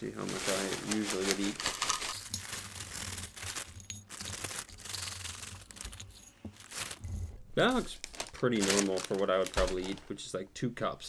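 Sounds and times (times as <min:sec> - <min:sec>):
plastic bag crinkling: 0:00.0 - 0:10.2
cereal flakes pouring into cup: 0:00.1 - 0:10.0.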